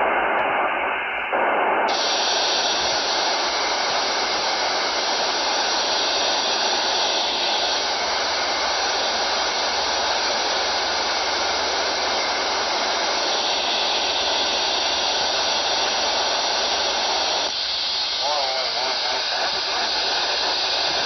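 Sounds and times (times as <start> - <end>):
radio static hiss: 0.0 - 21.0.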